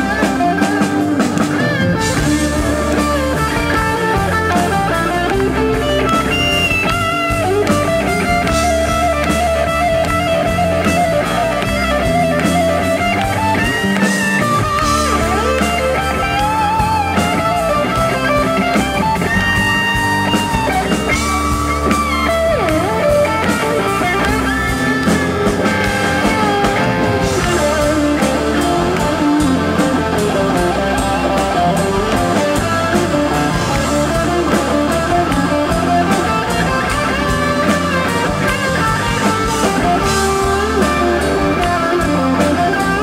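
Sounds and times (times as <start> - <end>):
bass and drums: 0.0 - 43.0
electric guitar lead: 0.0 - 43.0.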